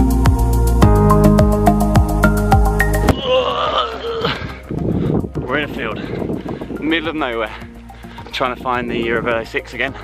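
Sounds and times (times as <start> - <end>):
faint music with a beat: 0.0 - 3.2, 4.3 - 10.0
person's wavering vocal sound: 3.1 - 4.6.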